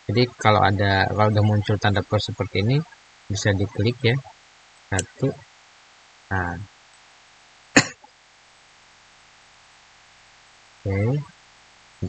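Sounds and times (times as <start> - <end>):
faint room hiss: 0.0 - 12.0
man coughing: 7.8 - 8.0.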